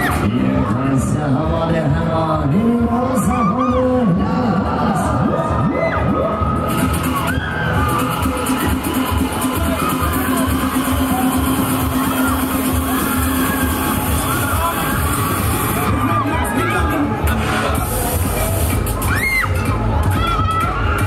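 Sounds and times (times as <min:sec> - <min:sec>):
riders screaming and cheering: 0:00.0 - 0:00.9, 0:02.6 - 0:21.0
loud fairground music: 0:00.0 - 0:21.0.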